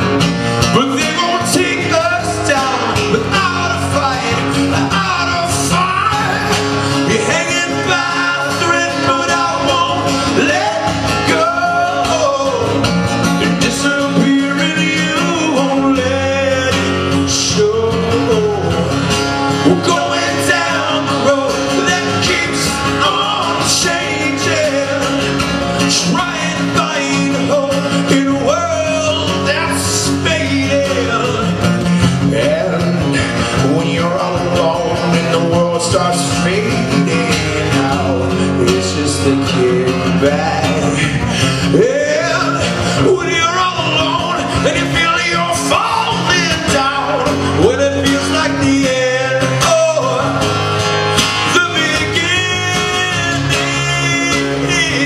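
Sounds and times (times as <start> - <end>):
acoustic guitar: 0.0 - 55.0
man singing: 0.0 - 55.0.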